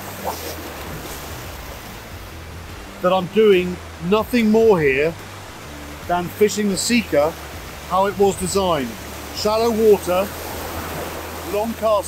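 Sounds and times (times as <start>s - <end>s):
surf washing over shallows: 0.0s - 12.0s.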